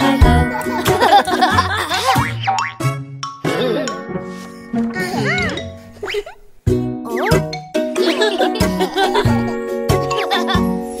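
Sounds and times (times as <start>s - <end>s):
children's song backing music: 0.0s - 6.0s, 6.7s - 11.0s.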